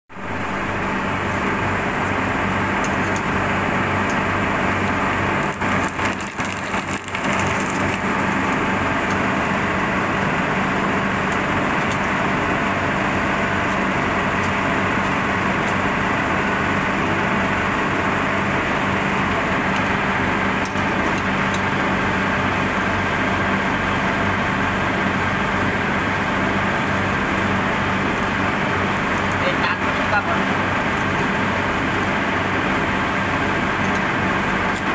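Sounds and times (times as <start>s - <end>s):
steady low hum: 0.1s - 34.9s.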